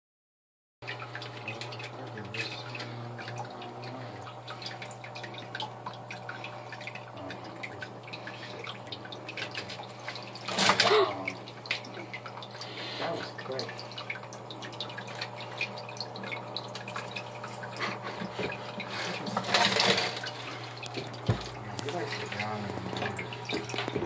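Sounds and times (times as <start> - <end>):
aquarium filter trickling water: 0.8 - 24.0
low steady hum: 0.8 - 24.0.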